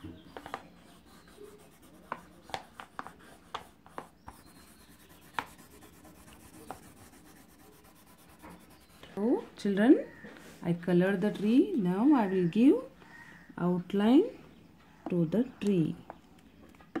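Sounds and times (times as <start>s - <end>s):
crayon rubbing on paper: 0.2s - 9.1s.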